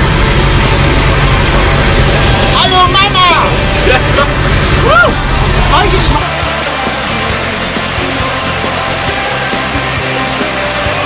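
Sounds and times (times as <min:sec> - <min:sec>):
low engine drone inside vehicle: 0:00.0 - 0:09.2
rising-and-falling whoop: 0:04.7 - 0:05.6.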